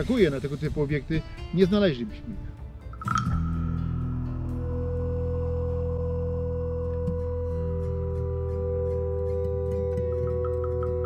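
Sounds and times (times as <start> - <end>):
ambient background music: 0.0 - 11.0
steady low drone: 2.4 - 11.0
struck bell-like tone: 3.0 - 5.2, 10.1 - 11.0.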